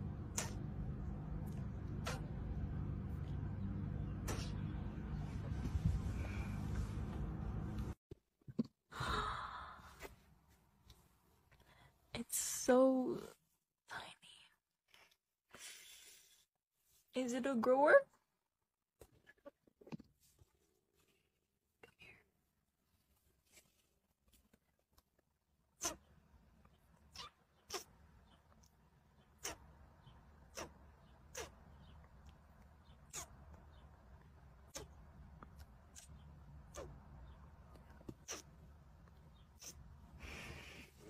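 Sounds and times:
sharp kiss sounds: 0.3s - 0.7s, 2.0s - 2.4s, 4.2s - 4.7s, 25.8s - 26.0s, 27.2s - 27.9s, 29.4s - 29.7s, 30.5s - 31.6s, 33.1s - 33.4s, 35.9s - 37.0s, 38.1s - 38.5s
woman sighing: 8.9s - 10.0s.

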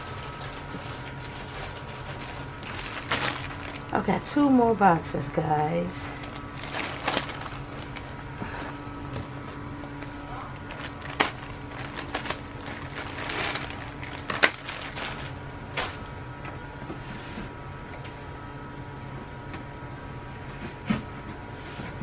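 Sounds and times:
packaging rustling: 0.0s - 4.2s, 6.1s - 8.3s, 9.2s - 16.1s
steady low hum: 0.0s - 22.0s.

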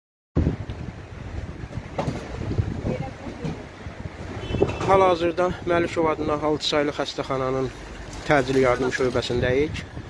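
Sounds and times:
wind buffeting microphone: 0.4s - 6.7s, 7.9s - 10.0s.

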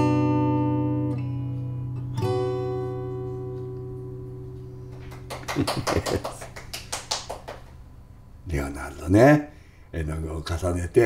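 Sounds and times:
acoustic guitar chord ringing: 0.0s - 5.3s.

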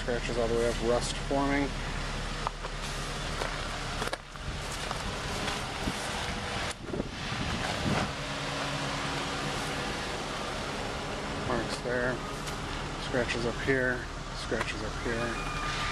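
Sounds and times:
outdoor background noise: 0.0s - 15.9s.

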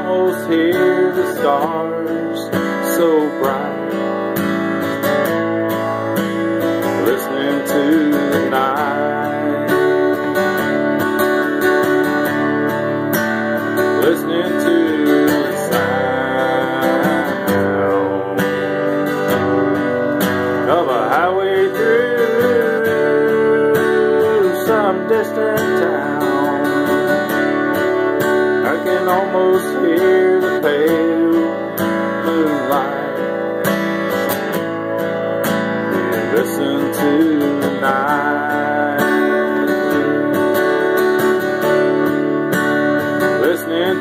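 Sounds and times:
acoustic guitar strummed and picked: 0.0s - 44.0s.

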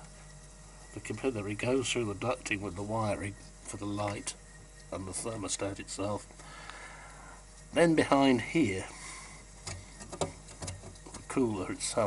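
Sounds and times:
fridge hum: 0.0s - 12.0s.

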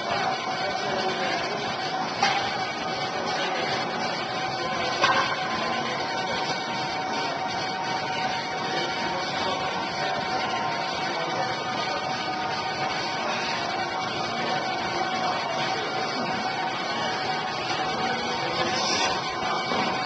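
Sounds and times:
faint music: 0.0s - 20.0s.

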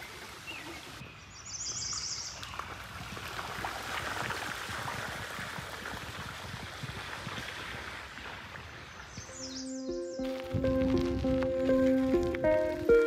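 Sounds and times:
creek running over rocks: 1.9s - 9.2s
music: 9.3s - 13.0s.

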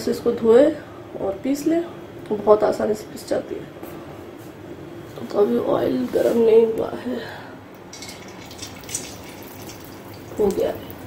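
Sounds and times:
batter sizzling in oil: 7.9s - 11.0s.

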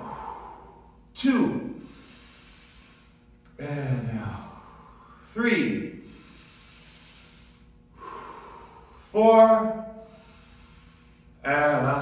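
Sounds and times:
man breathing deeply: 0.0s - 11.5s.

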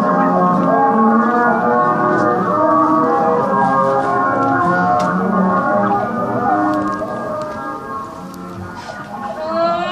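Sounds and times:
sustained keyboard drone: 0.0s - 9.9s.

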